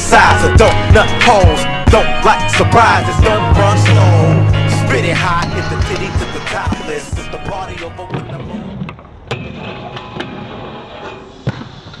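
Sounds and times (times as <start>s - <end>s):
skates grinding on metal rail: 2.0s - 12.0s.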